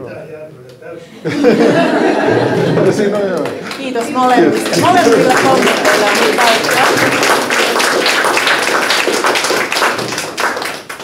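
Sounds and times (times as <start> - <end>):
audience applauding: 2.6 - 11.0.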